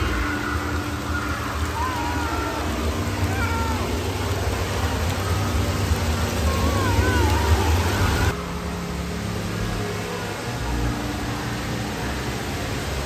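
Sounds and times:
young children crying out: 0.0s - 8.4s
water spraying and splashing: 0.0s - 13.0s.

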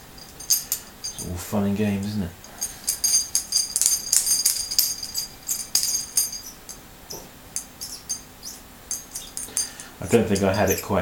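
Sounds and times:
small metal parts clinking: 0.0s - 1.4s, 2.4s - 11.0s.

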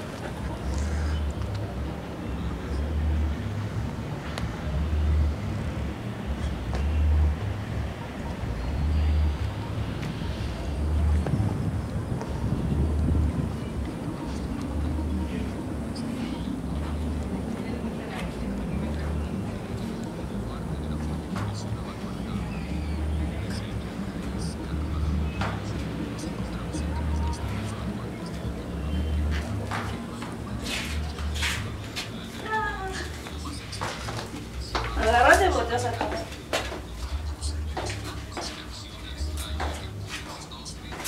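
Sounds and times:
indistinct voices: 0.0s - 41.0s
steady low rumble: 0.4s - 35.8s
wind buffeting microphone: 9.9s - 16.0s.

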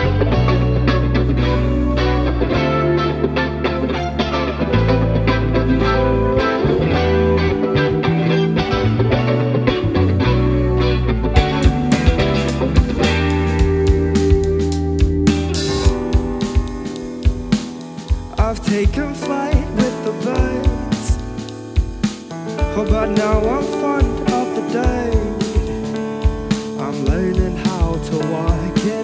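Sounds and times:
bass guitar: 0.0s - 29.0s
electric guitar: 0.0s - 29.0s
keyboard: 0.0s - 29.0s
drum kit hits and cymbals: 11.4s - 29.0s.

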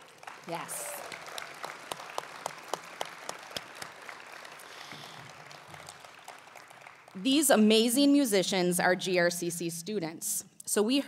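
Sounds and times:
audience applauding: 0.0s - 7.4s.

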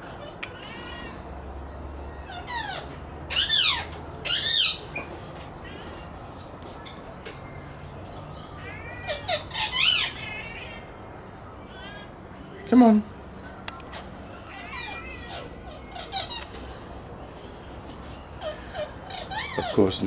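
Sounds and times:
magpies squawking: 2.2s - 6.0s, 8.3s - 10.9s, 13.8s - 16.8s, 18.0s - 20.0s.

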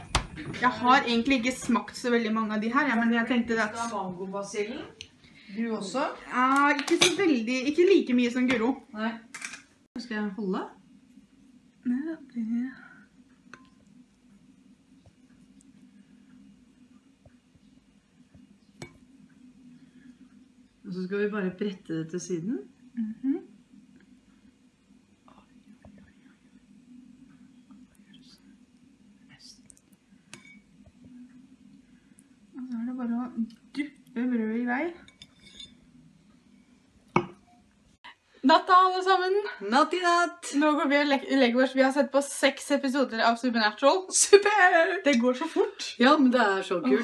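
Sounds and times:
low steady hum: 0.0s - 47.0s.

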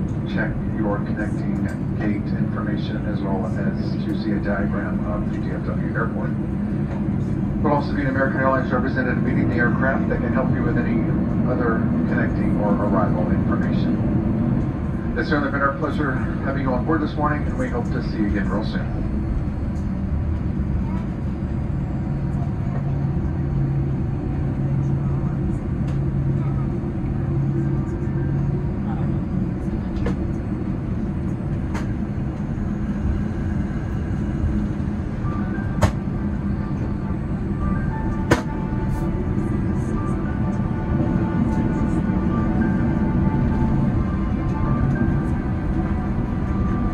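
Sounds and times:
aircraft engines rumbling: 0.0s - 46.9s
low hum: 0.0s - 46.9s.

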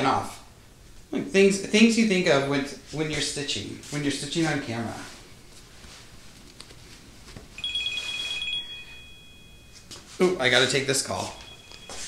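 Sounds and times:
electronic ringtone: 7.6s - 9.8s, 11.2s - 12.0s.

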